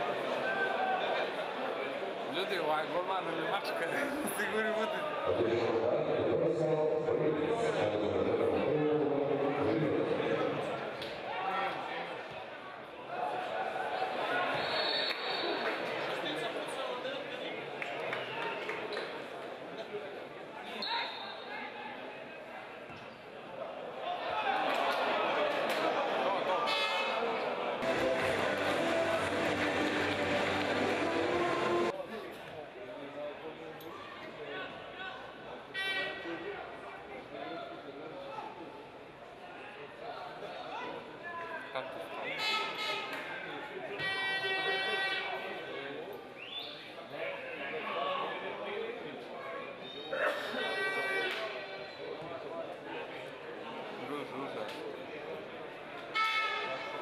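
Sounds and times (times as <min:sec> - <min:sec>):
crowd calls from stands: 0:27.7 - 0:32.0.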